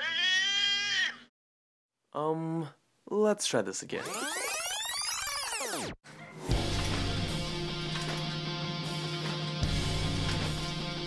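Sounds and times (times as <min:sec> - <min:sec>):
synthesized pitch sweep: 0:04.1 - 0:06.0.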